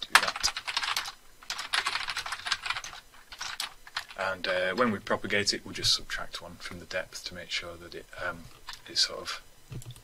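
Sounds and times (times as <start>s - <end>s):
computer keyboard typing: 0.1s - 4.2s, 9.7s - 10.0s.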